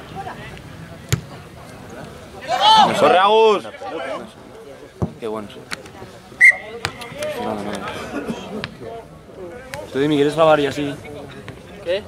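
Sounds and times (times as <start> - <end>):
referee's whistle blast: 6.4 - 6.8.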